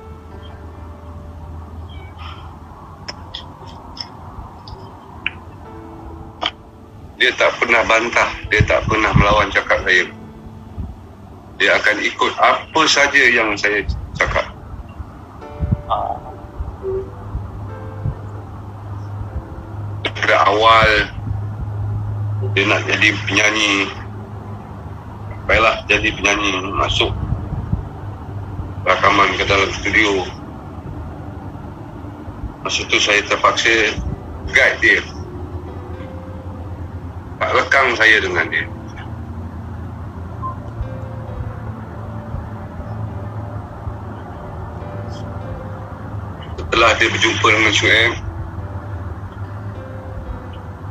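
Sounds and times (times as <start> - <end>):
soft low music notes: 0.0 - 50.9.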